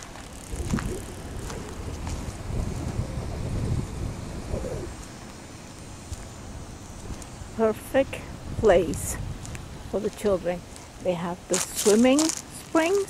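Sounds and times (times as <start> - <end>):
wind buffeting microphone: 0.0 - 12.4.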